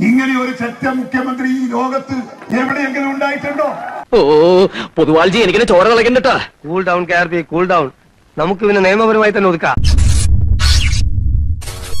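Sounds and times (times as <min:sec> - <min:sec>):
deep bass rumble: 0:09.8 - 0:12.0.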